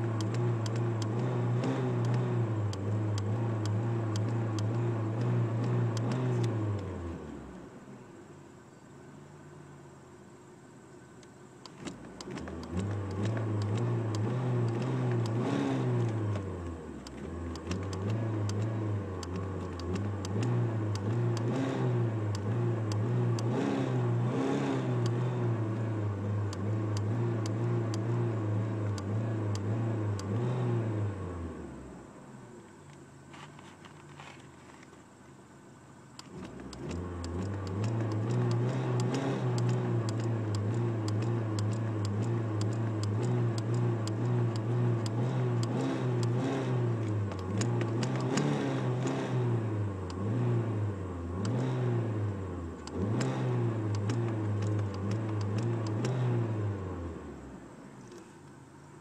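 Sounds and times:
car engine revving: 0.0 - 8.0, 11.6 - 32.5, 36.2 - 58.3.

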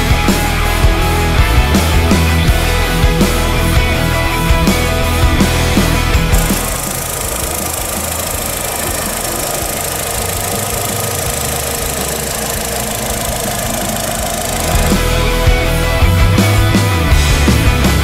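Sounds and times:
car engine idling: 0.0 - 18.0
rock music: 0.0 - 18.0.

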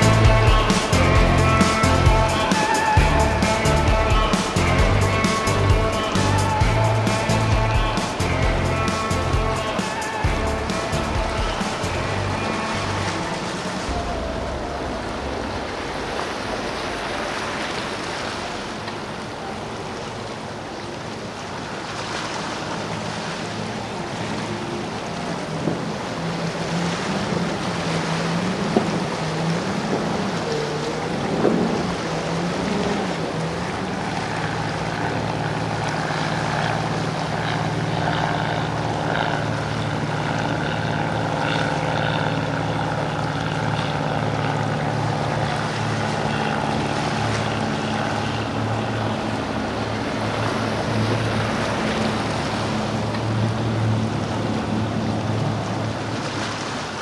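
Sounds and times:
outboard engines running: 0.0 - 57.0
surf and waves: 0.0 - 57.0
wind: 0.0 - 57.0.

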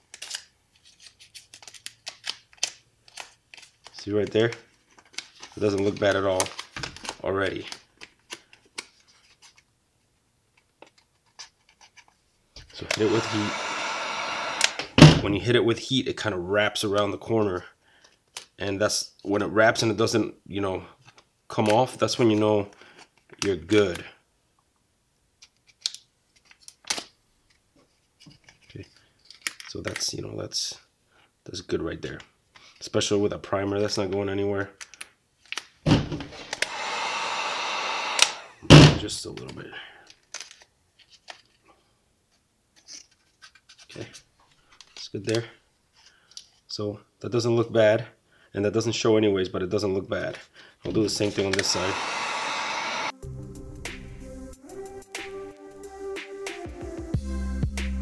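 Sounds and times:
vinyl film crinkling: 0.0 - 9.7
heat gun blowing air: 12.7 - 15.2, 36.4 - 39.0, 51.0 - 53.2.

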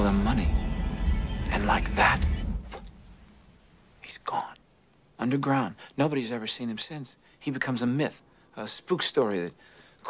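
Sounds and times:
man whispering: 3.9 - 10.0.

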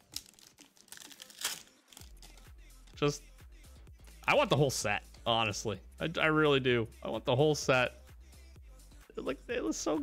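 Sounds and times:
foil wrapper crinkling: 0.0 - 2.5
loud foil crackles: 0.0 - 2.5.

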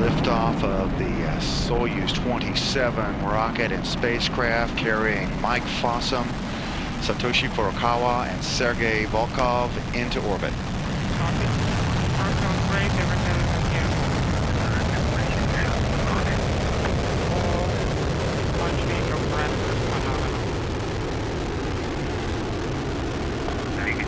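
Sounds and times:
faint voices: 0.0 - 20.6, 23.6 - 24.0
rocket engine deep rumble: 0.0 - 24.0.

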